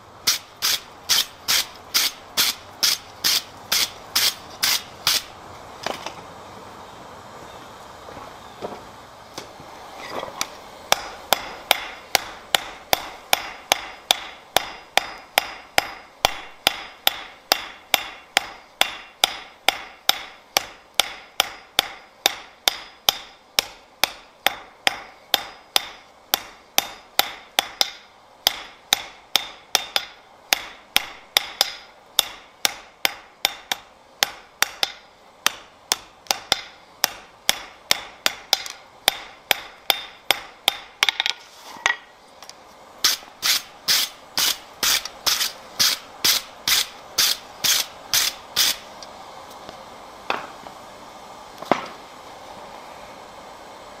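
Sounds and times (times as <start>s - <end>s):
hammer striking iron on anvil: 10.9s - 42.0s, 43.1s - 48.8s.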